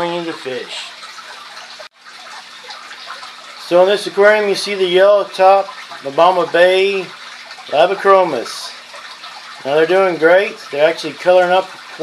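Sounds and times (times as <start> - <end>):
aquarium filter running water: 0.0 - 12.0.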